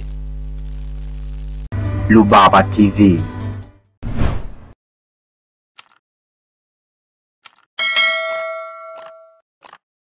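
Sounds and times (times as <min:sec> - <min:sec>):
notification bell ding: 0:07.8 - 0:09.4.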